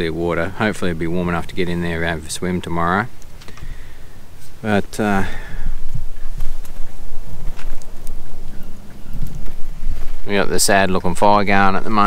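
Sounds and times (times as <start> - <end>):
wind buffeting microphone: 0.0 - 12.0
faint clicks: 3.1 - 3.8, 7.5 - 9.6.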